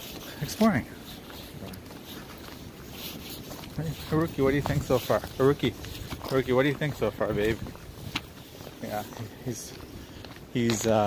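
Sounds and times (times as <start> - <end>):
footsteps on dry leaves: 0.0 - 11.0
wind rumbling on microphone: 0.0 - 11.0.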